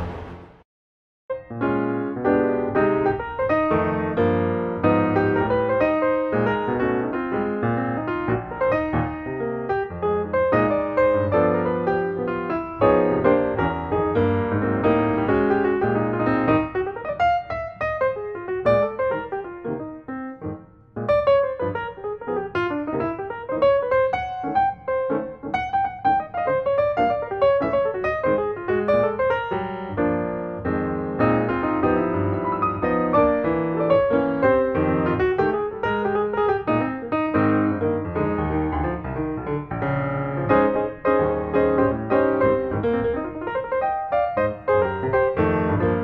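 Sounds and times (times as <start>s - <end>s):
piano music: 0.0s - 0.6s, 1.3s - 46.0s.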